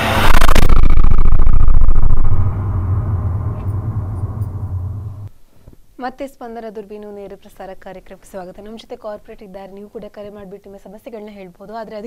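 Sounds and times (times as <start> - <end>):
deep rumbling boom: 0.0 - 5.3
rising whoosh: 0.0 - 5.3.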